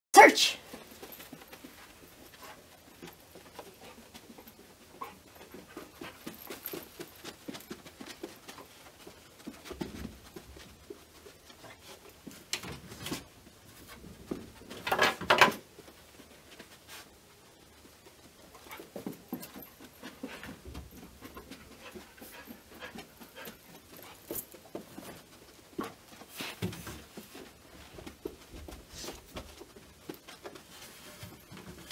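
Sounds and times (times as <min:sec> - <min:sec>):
dog panting and sniffing: 0:00.8 - 0:12.5, 0:18.5 - 0:31.8
dog breathing quickly: 0:19.7 - 0:24.6.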